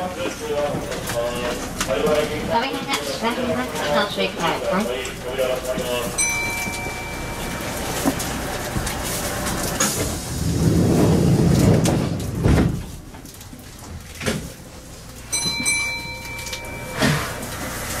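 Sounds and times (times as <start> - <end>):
train doors air rush: 9.5 - 13.0.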